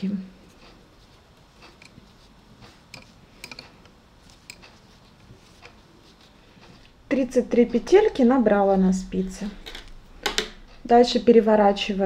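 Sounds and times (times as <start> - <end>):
yarn handling: 0.0 - 7.1
metal knitting needle clicks: 2.9 - 4.7.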